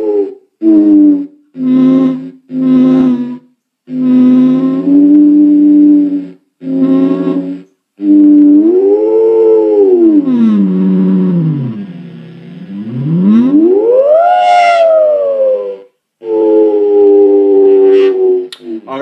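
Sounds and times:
theremin gliding electronic tone: 8.1 - 18.4.

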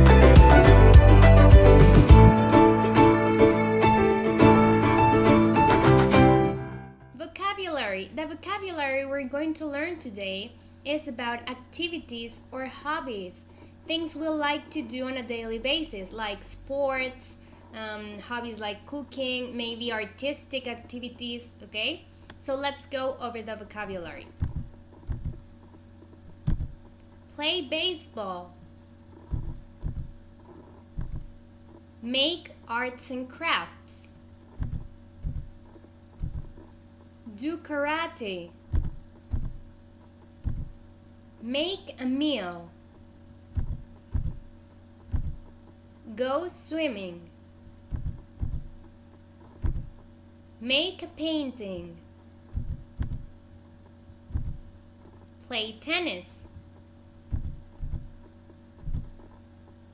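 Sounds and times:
low electrical hum: 0.0 - 59.9
dull thumps on microphone: 24.3 - 25.6, 26.3 - 26.9, 29.2 - 30.2, 30.9 - 31.4, 34.5 - 35.6, 36.2 - 36.6, 38.7 - 39.7, 40.4 - 40.8, 43.5 - 44.5, 45.1 - 45.5, 47.9 - 48.8, 49.6 - 50.0, 52.5 - 53.3, 54.3 - 54.7, 57.3 - 58.2, 58.8 - 59.3.

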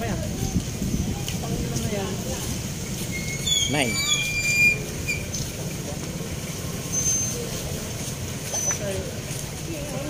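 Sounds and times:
motor vehicles rumbling: 0.0 - 10.0.

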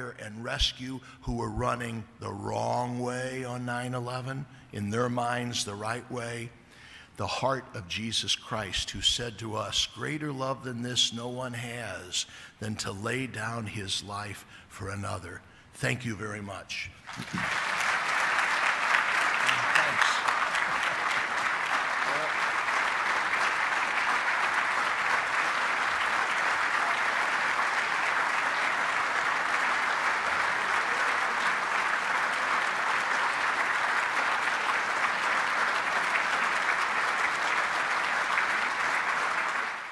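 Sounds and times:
audience applauding: 17.0 - 39.9.

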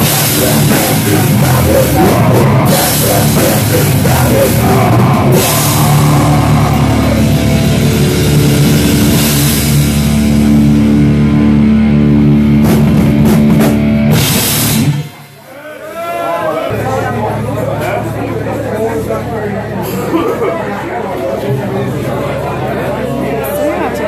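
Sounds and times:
heavy metal band playing: 0.0 - 15.5.

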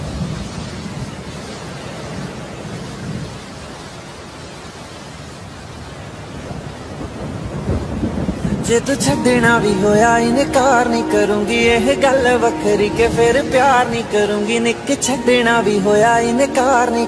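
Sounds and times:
rain hiss: 0.0 - 17.0
low rolling thunder: 6.4 - 10.8
music: 8.8 - 17.0.

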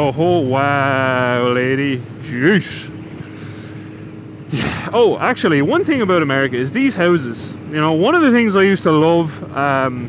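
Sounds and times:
motorcycle engine cruising: 0.0 - 10.0.

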